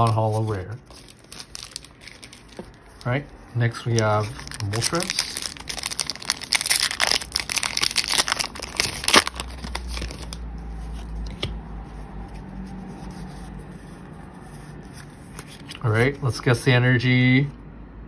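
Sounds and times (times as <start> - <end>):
foil wrapper crinkling and tearing: 0.0 - 11.2.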